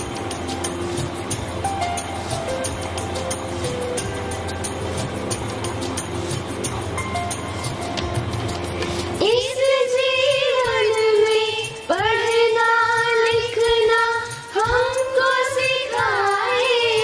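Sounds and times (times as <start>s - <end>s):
electronic keyboard slow melody: 0.0s - 11.4s.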